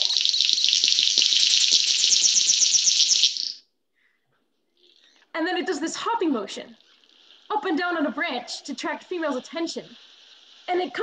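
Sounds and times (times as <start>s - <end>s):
bird buzzing call: 0.0s - 3.6s.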